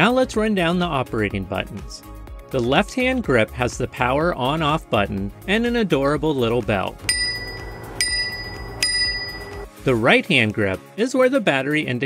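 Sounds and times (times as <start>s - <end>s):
bicycle bell ding: 7.1s - 9.7s.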